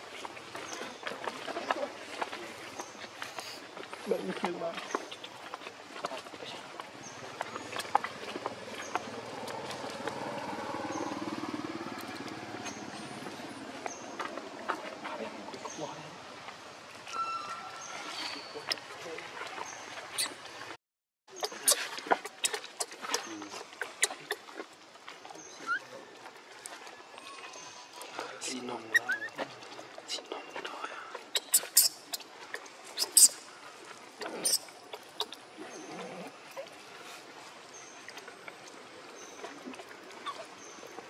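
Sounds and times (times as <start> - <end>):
faint outdoor background: 0.0 - 41.0
distant motor engine passing: 8.1 - 14.7
baby monkey squeaking: 28.9 - 29.3, 31.3 - 32.2, 33.0 - 33.4, 34.4 - 35.4.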